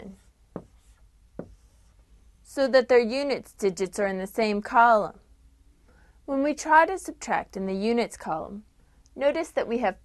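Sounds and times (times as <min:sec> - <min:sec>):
marker writing on a whiteboard: 0:00.0 - 0:02.4
marker tip tapping board: 0:00.5 - 0:01.7.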